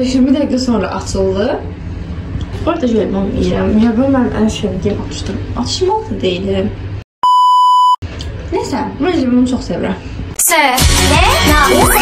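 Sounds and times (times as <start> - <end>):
electronic test tone beep: 7.2 - 8.0.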